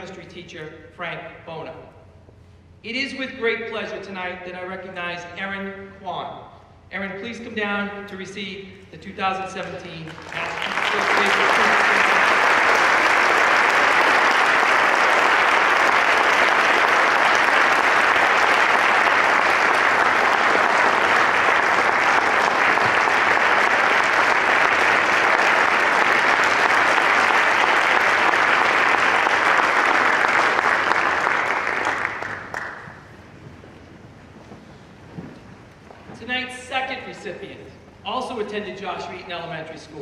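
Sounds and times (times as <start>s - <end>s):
audience applauding: 10.1s - 33.4s.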